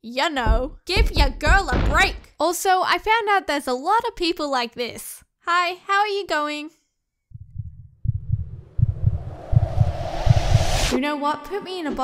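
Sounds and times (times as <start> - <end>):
low heartbeat-like thumps: 0.4 - 2.3, 7.3 - 10.9
rising hiss: 9.0 - 11.0.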